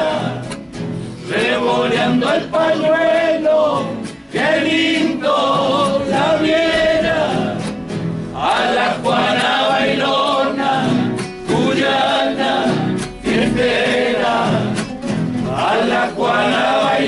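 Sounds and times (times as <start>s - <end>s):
men singing together: 0.0s - 0.6s, 1.2s - 17.0s
strummed acoustic guitars: 0.0s - 17.0s.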